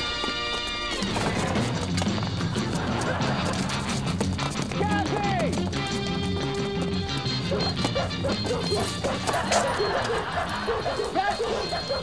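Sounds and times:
dogs barking and yipping: 0.0s - 4.6s, 5.6s - 12.0s
background music: 0.0s - 12.0s.

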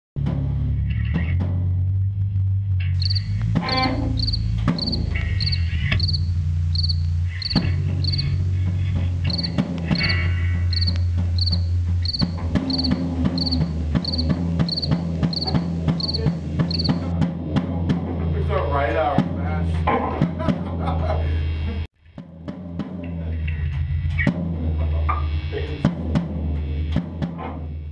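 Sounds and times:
rock band playing: 3.0s - 17.2s
steady high tick: 9.3s - 17.0s.

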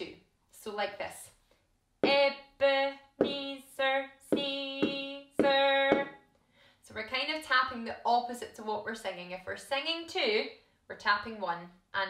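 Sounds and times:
woman speaking: 0.0s - 1.4s, 2.0s - 6.1s, 6.9s - 12.0s
drumstick tapping on floor: 4.3s - 6.2s.

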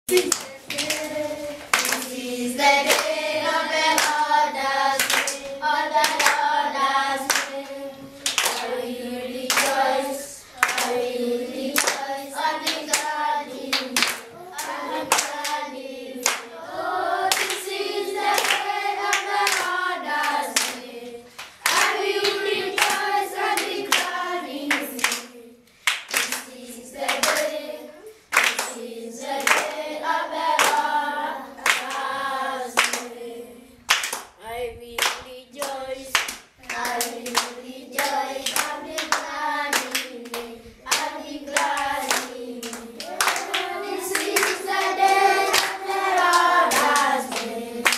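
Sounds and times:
hands clapping on a beat: 0.1s - 6.6s, 7.2s - 8.8s, 9.5s - 11.1s, 11.7s - 16.6s, 17.3s - 27.6s, 28.3s - 29.8s, 30.5s - 30.9s, 31.6s - 32.1s, 32.8s - 33.1s, 33.9s - 34.4s, 35.0s - 47.9s
children's choir singing hymn: 0.1s - 47.9s.

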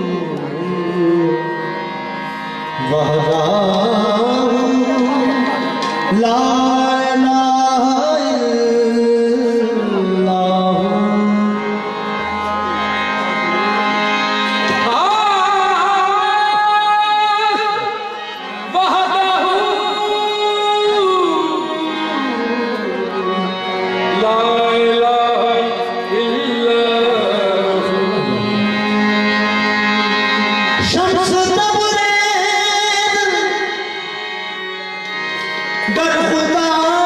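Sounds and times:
person singing: 0.0s - 34.2s, 35.8s - 37.0s
harmonium sustained chord: 0.0s - 37.0s.

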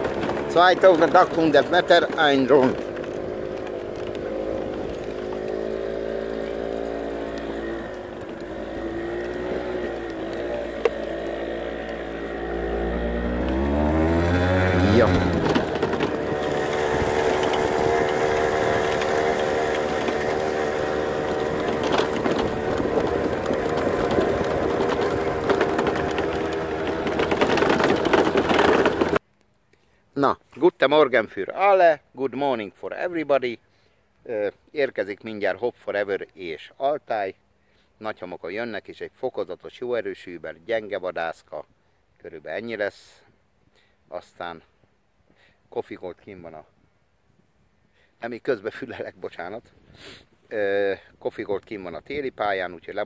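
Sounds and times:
small engine running: 0.0s - 29.2s.

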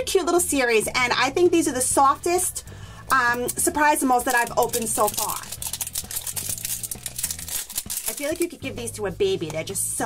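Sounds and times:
sticker tearing and crinkling: 4.3s - 8.6s.

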